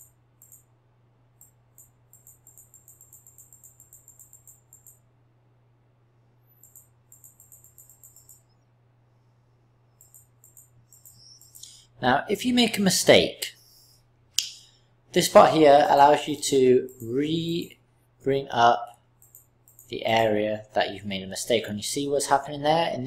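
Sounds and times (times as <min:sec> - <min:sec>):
computer mouse clicks: 0:00.0 - 0:00.7, 0:01.4 - 0:05.0, 0:06.6 - 0:08.6, 0:09.9 - 0:11.8, 0:19.2 - 0:19.9
low electrical hum: 0:00.0 - 0:23.0.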